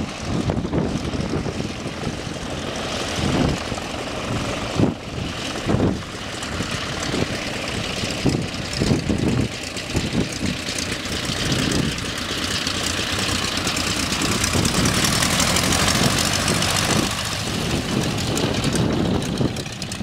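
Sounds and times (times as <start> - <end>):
biplane radial engine idling: 0.0 - 20.0.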